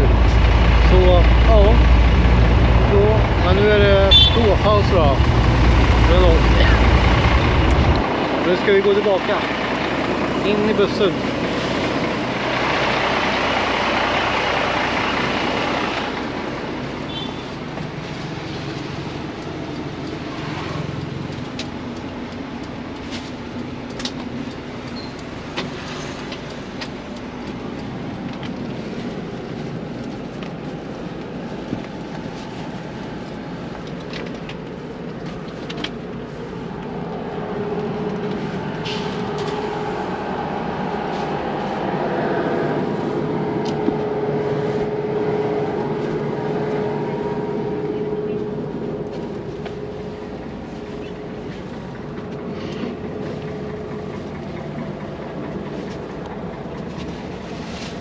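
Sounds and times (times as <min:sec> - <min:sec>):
bus engine running: 0:00.0 - 0:58.0.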